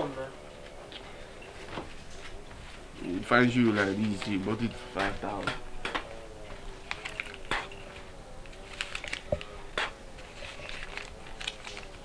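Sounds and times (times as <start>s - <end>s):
banknotes crinkling and flicking: 0.0s - 12.0s
faint wavering hum: 0.0s - 12.0s.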